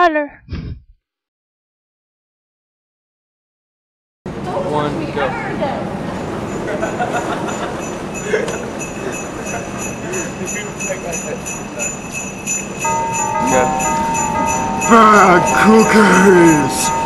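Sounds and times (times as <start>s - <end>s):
sustained musical notes: 5.8s - 17.0s
jingle bells shaking: 6.6s - 17.0s.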